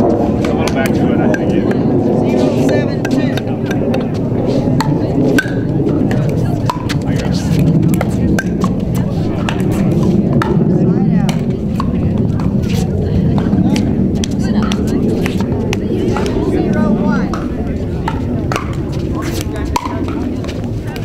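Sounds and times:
background murmur: 0:00.0 - 0:21.0.

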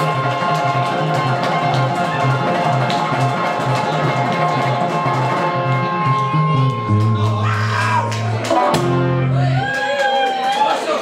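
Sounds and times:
electric guitar blues melody: 0:00.0 - 0:09.7
low guitar bass line: 0:00.0 - 0:09.7.

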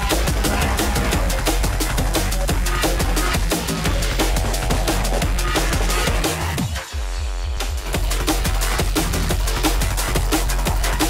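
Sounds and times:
deep bass line: 0:00.0 - 0:11.0
fast breakbeat drums: 0:00.0 - 0:11.0.

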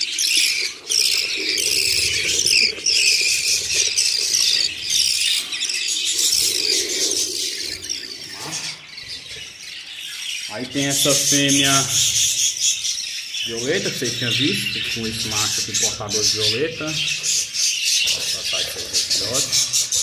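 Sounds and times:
budgerigar chicks begging calls: 0:00.0 - 0:20.0.

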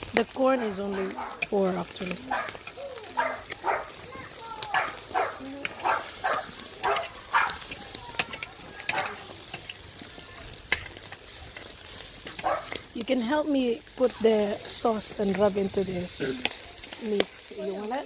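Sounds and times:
meat sizzling on grill: 0:00.0 - 0:18.0
sharp pops and crackles: 0:00.0 - 0:18.0
faint voices: 0:00.1 - 0:11.6, 0:12.3 - 0:18.0.

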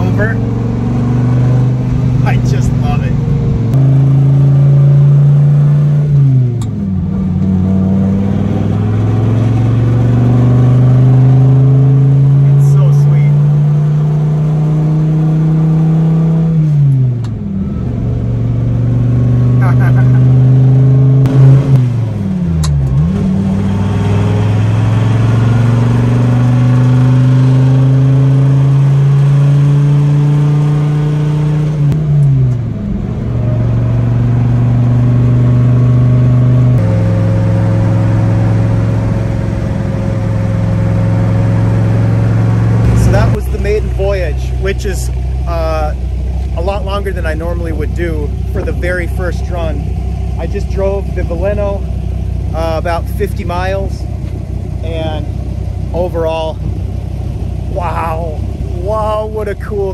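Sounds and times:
car engine accelerating through gears: 0:00.0 - 0:59.9.

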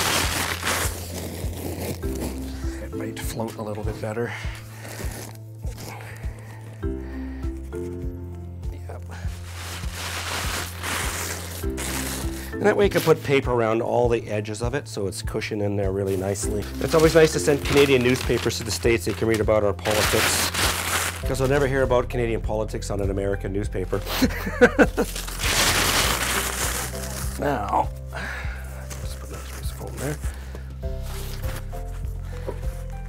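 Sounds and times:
packing paper crumpling: 0:00.0 - 0:02.8, 0:09.0 - 0:13.2, 0:16.1 - 0:21.7, 0:24.6 - 0:30.4
background music with steady beat: 0:00.0 - 0:33.0.

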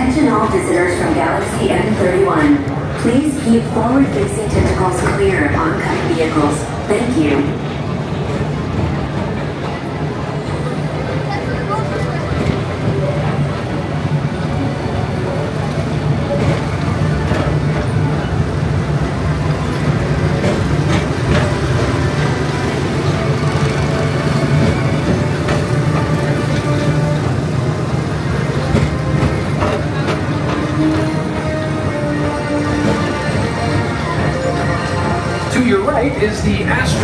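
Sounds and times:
ride car rumbling along track: 0:00.0 - 0:37.0
voices: 0:00.0 - 0:37.0.

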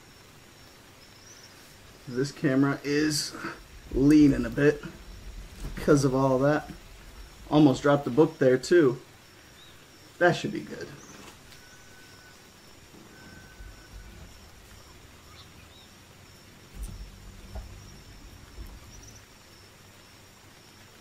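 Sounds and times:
insects chirring: 0:00.0 - 0:21.0.

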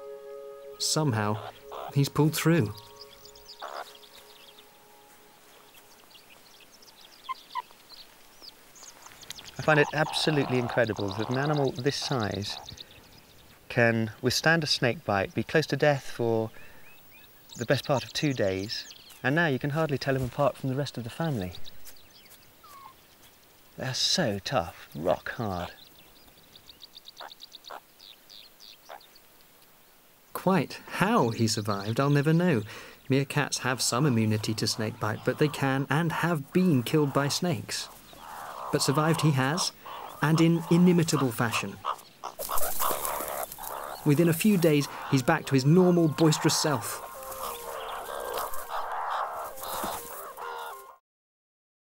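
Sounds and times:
short lower calls: 0:00.0 - 0:05.4
small animals chirping: 0:01.2 - 0:04.6, 0:07.0 - 0:08.0, 0:08.8 - 0:12.8, 0:21.7 - 0:23.0, 0:27.1 - 0:29.1, 0:33.4 - 0:51.0
meerkats giving short calls: 0:34.0 - 0:51.0.

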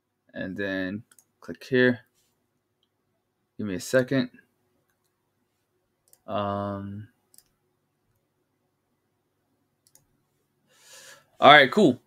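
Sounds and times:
computer mouse clicks: 0:01.1 - 0:01.4, 0:06.0 - 0:06.3, 0:07.3 - 0:08.3, 0:09.8 - 0:10.2.

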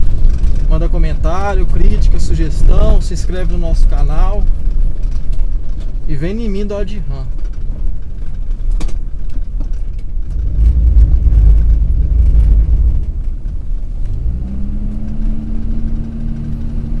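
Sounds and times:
diesel engine rumble inside cab: 0:00.0 - 0:17.0.

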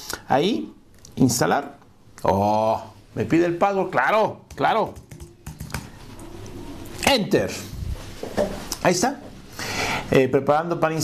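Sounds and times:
computer keyboard keystrokes: 0:04.5 - 0:05.9.

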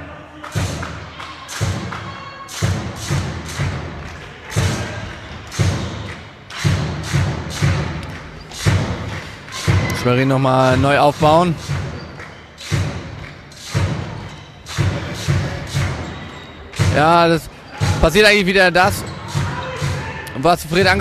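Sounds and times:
echoing thumps: 0:00.4 - 0:21.0.

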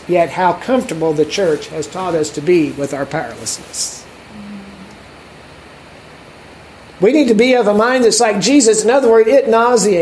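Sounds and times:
background hiss: 0:00.0 - 0:10.0.

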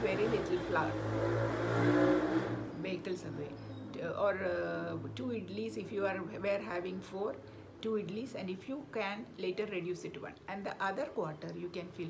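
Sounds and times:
motor vehicle passing: 0:00.0 - 0:05.1.

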